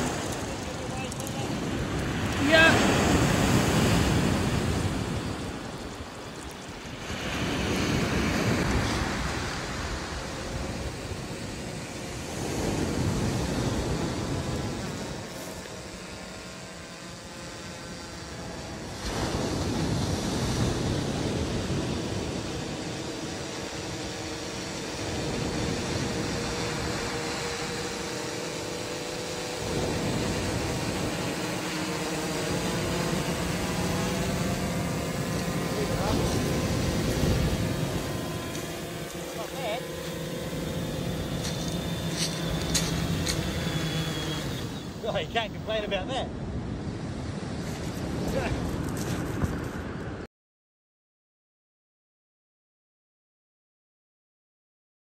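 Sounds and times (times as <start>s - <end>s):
drone propellers humming: 0.0s - 49.7s
wind buffeting microphone: 0.0s - 50.2s.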